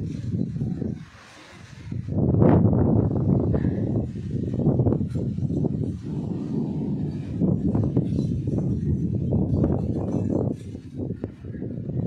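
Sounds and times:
strong gusty wind: 0:00.0 - 0:12.0.

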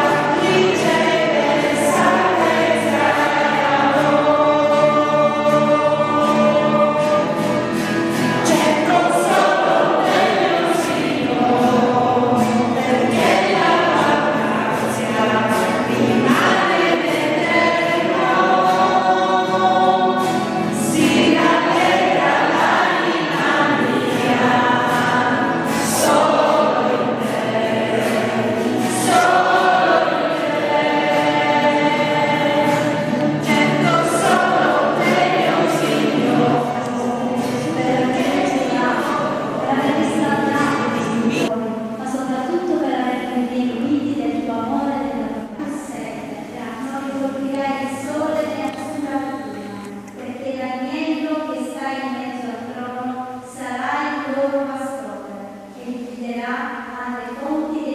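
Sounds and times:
choir singing worship music: 0:00.0 - 0:57.9.

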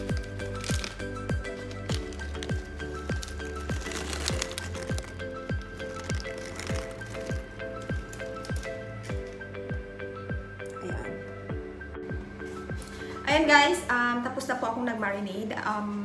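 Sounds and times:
background music with deep drum: 0:00.0 - 0:13.5.

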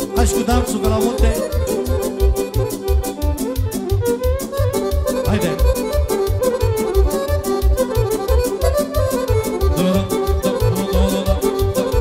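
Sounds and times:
instrumental folk dance music: 0:00.0 - 0:12.0.

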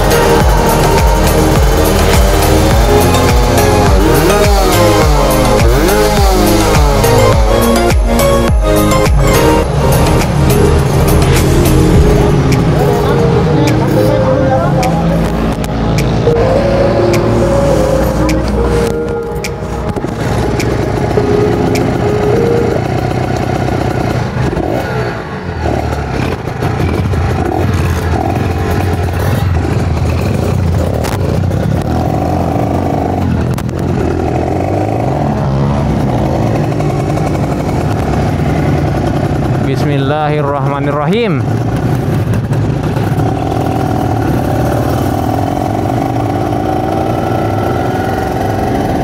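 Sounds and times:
people's voices: 0:00.0 - 0:07.9, 0:09.3 - 0:23.0
motorcycle engines revving: 0:00.0 - 0:49.0.

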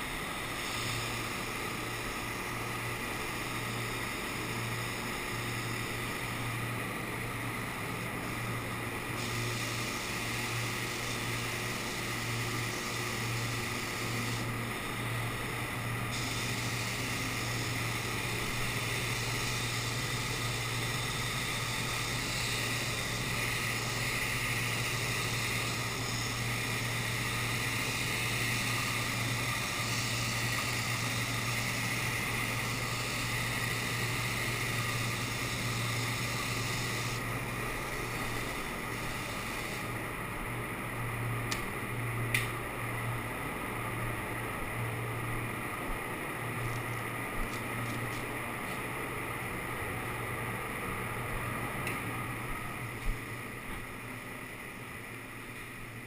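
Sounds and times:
spray gun hissing: 0:00.0 - 0:40.1.

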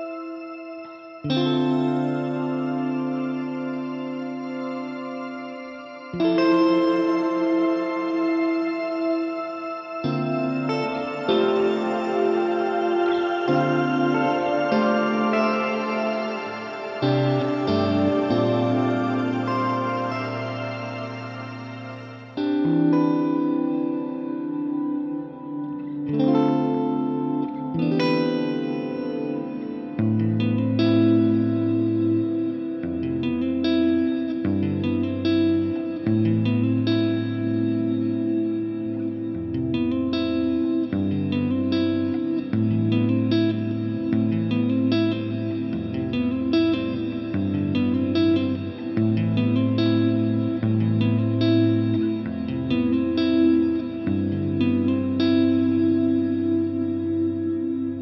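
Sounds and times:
electric guitar picked notes: 0:00.0 - 0:58.0
low reverb wash: 0:00.0 - 0:58.0.

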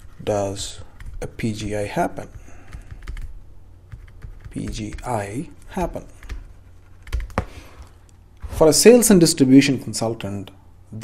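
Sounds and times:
stylus tapping and scratching on tablet: 0:00.0 - 0:08.0.

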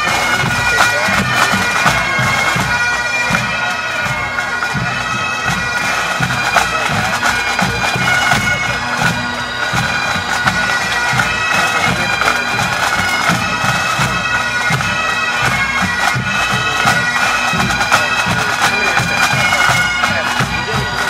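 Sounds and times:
bagpipe drones: 0:00.0 - 0:21.0
bagpipes playing melody: 0:00.0 - 0:21.0
pipe band drums beating: 0:00.0 - 0:21.0.

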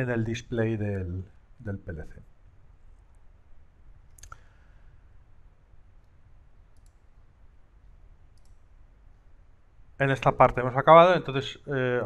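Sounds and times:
low steady hum: 0:00.0 - 0:12.0
computer mouse clicks: 0:04.0 - 0:04.5, 0:06.0 - 0:07.1, 0:08.3 - 0:08.7.

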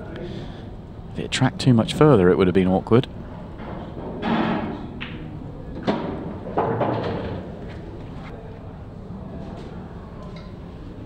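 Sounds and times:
pool balls clicking: 0:03.6 - 0:07.6.

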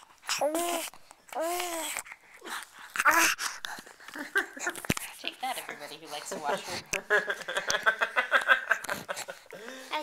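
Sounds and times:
baby vocalizing: 0:00.2 - 0:03.9.

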